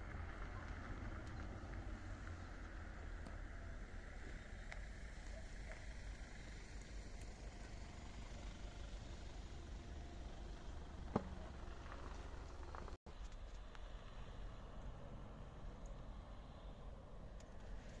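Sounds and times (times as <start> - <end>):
low outdoor rumble: 0.0 - 18.0.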